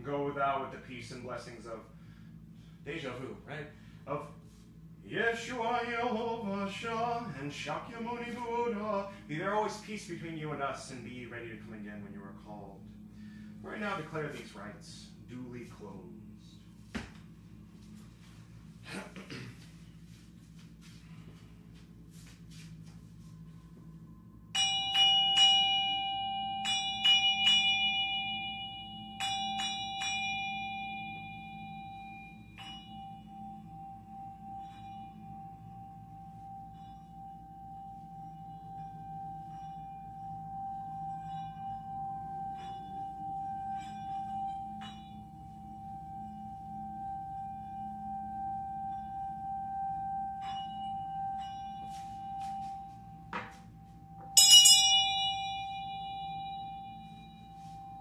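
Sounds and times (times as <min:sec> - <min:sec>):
ritual bell ringing: 0:20.8 - 0:58.0.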